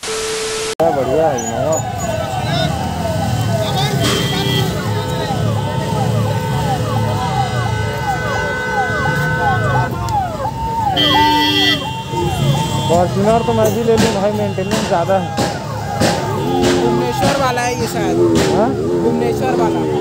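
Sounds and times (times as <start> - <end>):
electronic siren wailing: 0.0 - 13.9
vehicle engines rumbling: 0.8 - 20.0
vehicle horn: 3.9 - 10.0, 10.9 - 15.4, 16.1 - 17.5.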